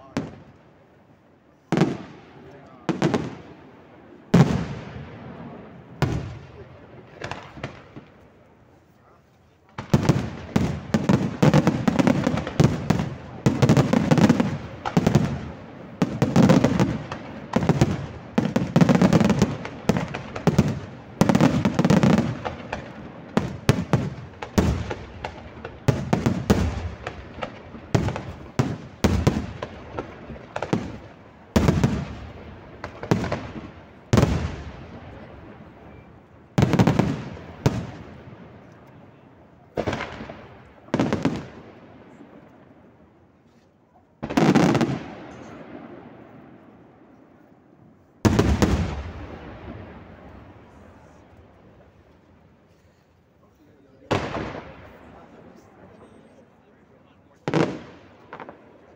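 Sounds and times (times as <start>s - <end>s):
fireworks rumble: 0.0s - 58.9s
fireworks bursting: 1.7s - 8.4s, 9.6s - 42.9s, 44.2s - 47.3s, 48.1s - 56.6s, 57.2s - 58.9s.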